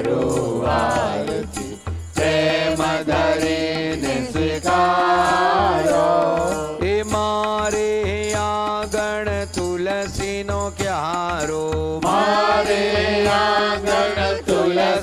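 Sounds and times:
mantra chanting sung: 0:00.0 - 0:09.2.

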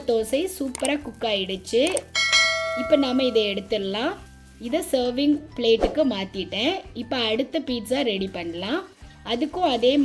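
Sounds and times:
bell-like notification ding: 0:02.1 - 0:03.7.

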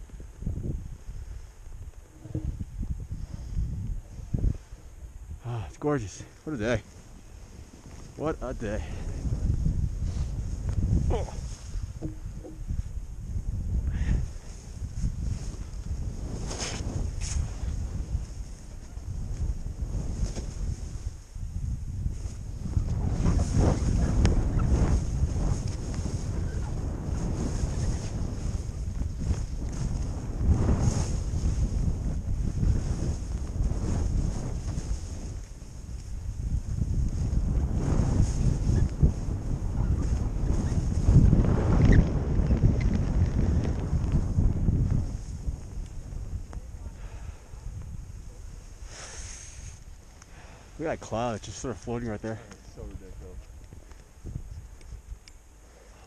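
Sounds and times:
wind buffeting microphone: 0:00.0 - 0:56.0
skis scraping through snow: 0:09.2 - 0:11.9, 0:14.2 - 0:50.8.

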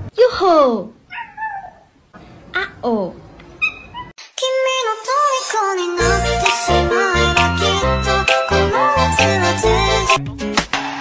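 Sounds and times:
cat meowing: 0:01.1 - 0:01.9
music: 0:05.6 - 0:11.0.

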